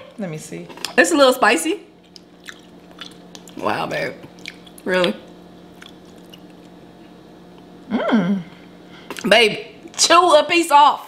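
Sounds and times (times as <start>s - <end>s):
steady low hum: 0.0s - 11.0s
wet squishing and chewing: 2.0s - 6.8s.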